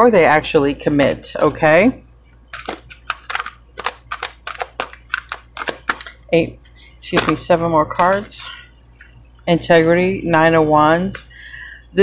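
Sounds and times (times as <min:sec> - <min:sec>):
cards being shuffled: 0:02.2 - 0:07.4.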